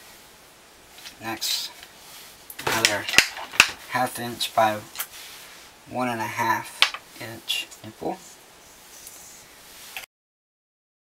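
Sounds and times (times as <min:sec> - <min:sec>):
man speaking: 0:01.2 - 0:01.8, 0:02.6 - 0:05.0, 0:05.9 - 0:08.3.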